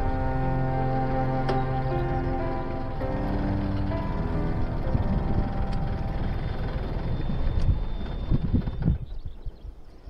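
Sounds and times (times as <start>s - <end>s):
low bumps: 0.0s - 9.5s
tractor engine running: 0.0s - 9.6s.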